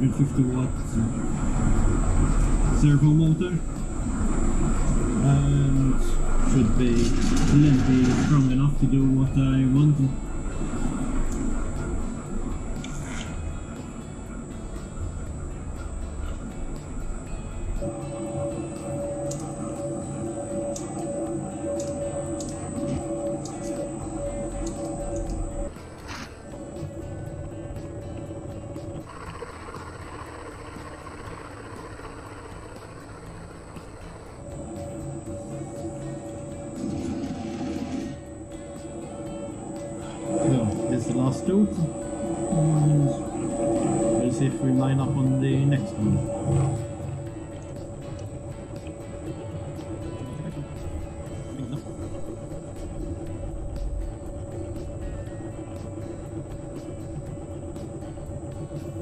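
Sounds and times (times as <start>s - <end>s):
milling machine whining: 0.0s - 59.0s.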